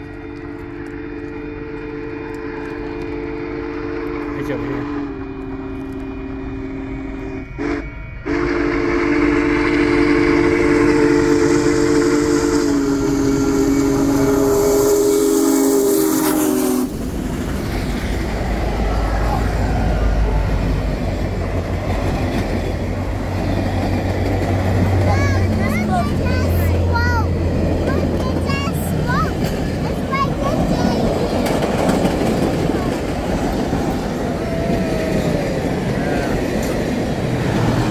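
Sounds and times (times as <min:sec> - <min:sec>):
train rumbling over rails: 0:00.0 - 0:37.9
steam whistle blowing: 0:00.2 - 0:17.0.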